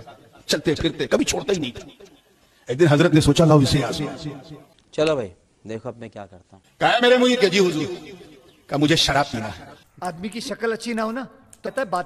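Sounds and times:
man speaking into a microphone: 0:00.0 - 0:02.0, 0:02.6 - 0:12.0.

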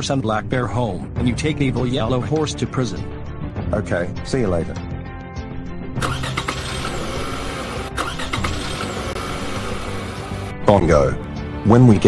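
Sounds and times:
background music: 0:00.0 - 0:12.0
car engine starting and driving off: 0:06.0 - 0:10.5.

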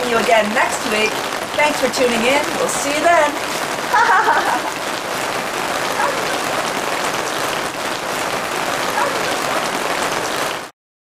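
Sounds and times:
rain on plastic film: 0:00.0 - 0:10.7.

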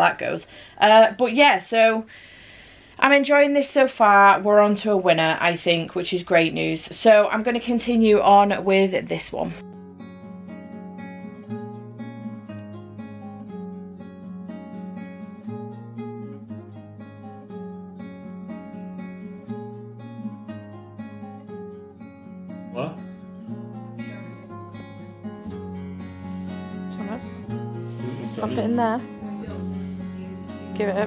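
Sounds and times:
plucked-string background music: 0:09.5 - 0:31.0.

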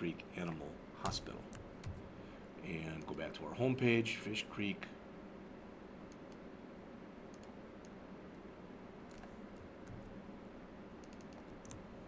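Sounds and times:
computer keyboard typing: 0:01.0 - 0:02.0, 0:09.1 - 0:10.1, 0:11.0 - 0:12.0.

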